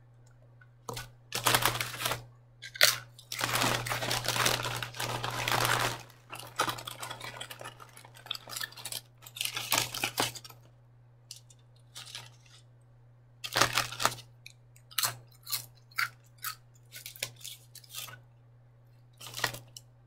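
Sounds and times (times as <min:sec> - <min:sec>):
aluminium foil wrapper crinkling: 0:00.9 - 0:10.7, 0:11.8 - 0:12.6, 0:13.4 - 0:18.2, 0:19.2 - 0:19.8.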